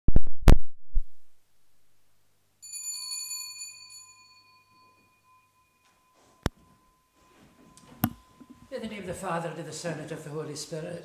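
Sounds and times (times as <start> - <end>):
small bell ringing: 2.6 - 9.1.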